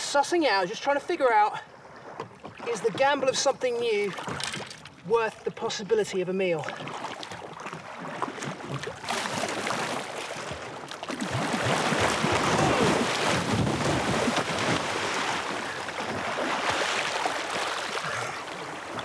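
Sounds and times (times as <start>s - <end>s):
water splashing and churning: 0.0s - 19.0s.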